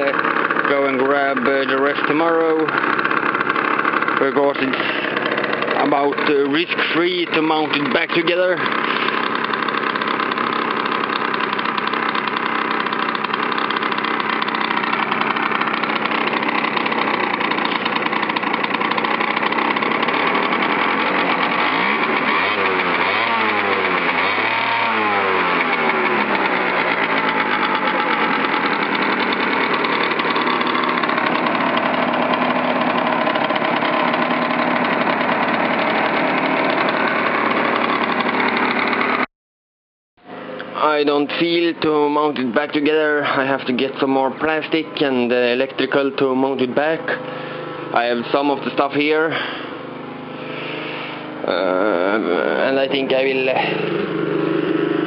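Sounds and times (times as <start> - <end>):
scooter engine idling and revving: 0.0 - 39.3, 40.2 - 55.0.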